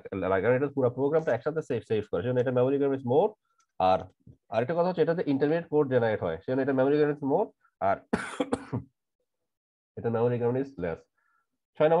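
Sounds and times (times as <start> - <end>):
man clearing throat: 8.1 - 8.9.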